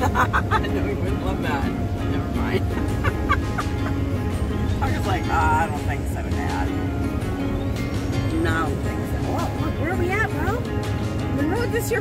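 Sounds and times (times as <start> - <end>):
woman laughing: 0.0 - 1.0, 2.5 - 4.2
vehicle interior rumble: 0.0 - 12.0.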